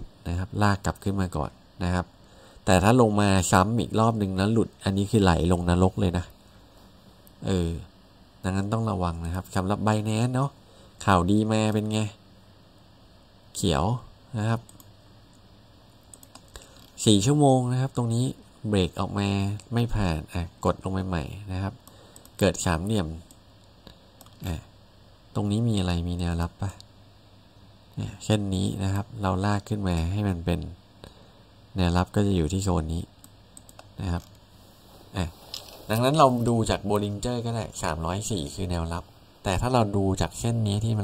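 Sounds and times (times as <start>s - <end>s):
room hiss: 0.0s - 41.0s
faint computer clicks: 14.6s - 15.4s, 16.0s - 17.0s, 21.8s - 22.4s, 23.2s - 24.5s, 33.2s - 34.4s
computer input clicks: 16.1s - 17.0s, 33.2s - 34.4s.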